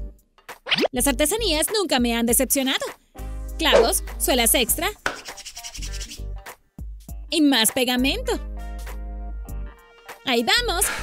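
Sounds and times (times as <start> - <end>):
background music: 0.0 - 11.0
palms rubbing together: 4.9 - 6.4.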